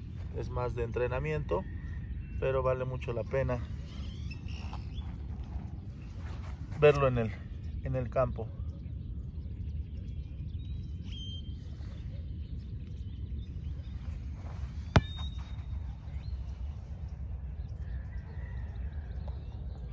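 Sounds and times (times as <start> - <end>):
low background rumble: 0.0 - 19.9
bird chirps: 3.2 - 6.6, 7.5 - 19.9
football kick: 14.4 - 16.0.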